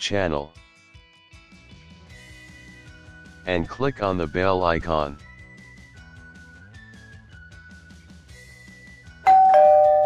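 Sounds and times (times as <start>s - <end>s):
two-note doorbell chime: 9.3s - 10.0s.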